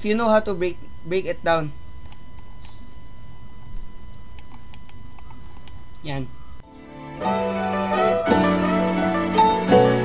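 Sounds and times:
steady low hum: 0.0s - 7.4s
thin electrical whine: 0.0s - 7.5s.

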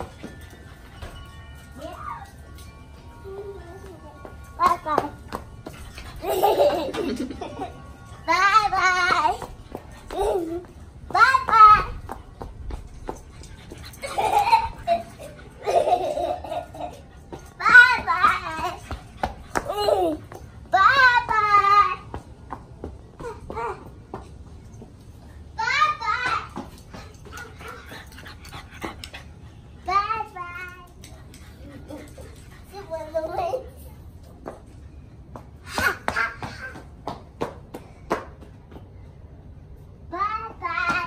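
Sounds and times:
small child laughing: 6.2s - 7.8s, 14.0s - 17.0s.

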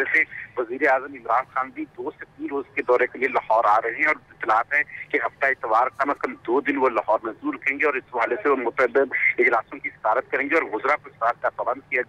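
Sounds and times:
man talking over telephone line: 0.0s - 12.0s.

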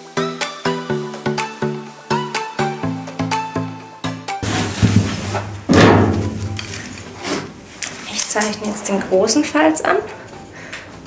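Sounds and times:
background music with plucked notes: 0.0s - 11.0s
loud thump: 4.4s - 6.9s
metal sheet handling noise: 4.4s - 8.8s.

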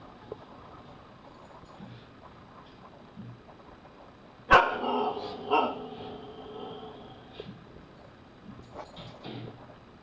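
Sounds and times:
dog barking: 4.5s - 6.1s.

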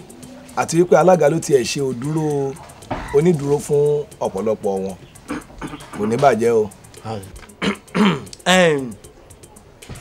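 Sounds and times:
person speaking: 5.7s - 9.1s.

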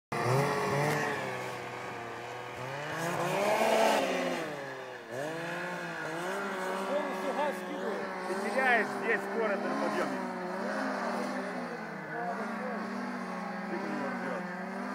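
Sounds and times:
snowmobile engine under throttle: 0.1s - 14.9s.

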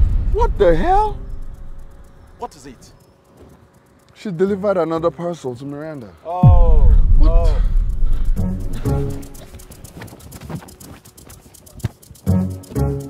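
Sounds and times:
deep boom: 0.0s - 2.9s, 6.4s - 9.6s
background music: 0.0s - 10.1s, 12.1s - 13.0s
person crying out: 7.1s - 7.8s.

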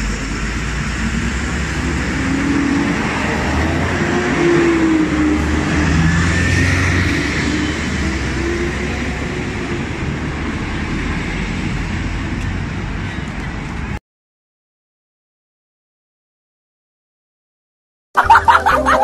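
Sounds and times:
bus engine passing: 0.0s - 14.0s
heavy road traffic: 0.0s - 14.0s, 18.2s - 19.0s.

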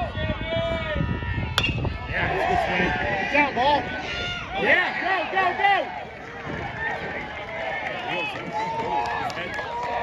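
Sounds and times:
spectators shouting and cheering: 0.0s - 10.0s
baseball bat hitting ball: 1.6s - 2.0s.

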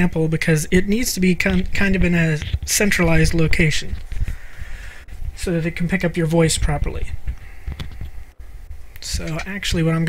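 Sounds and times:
microphone rubbing on shirt fabric: 1.6s - 5.5s, 6.4s - 9.4s.

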